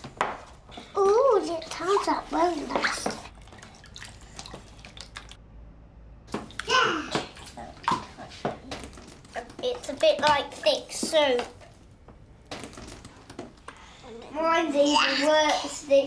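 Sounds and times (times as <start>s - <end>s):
wet paint squishing: 0.0s - 5.4s, 6.3s - 13.7s
young children's voices: 0.7s - 3.3s, 6.6s - 11.6s, 13.9s - 16.0s.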